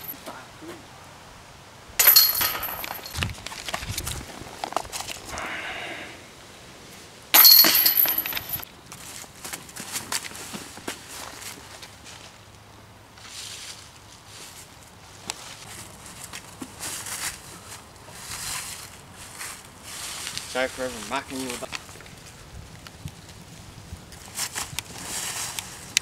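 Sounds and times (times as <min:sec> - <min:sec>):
metal chains clashing and ringing: 0:02.0 - 0:03.2, 0:07.4 - 0:08.6
footsteps on dry leaves: 0:08.5 - 0:12.4, 0:13.2 - 0:22.5, 0:24.1 - 0:25.9.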